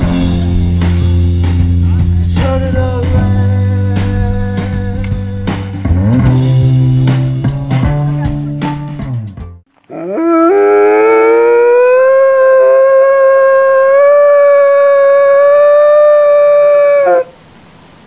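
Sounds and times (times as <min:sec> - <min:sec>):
dog howling: 0:09.9 - 0:17.3.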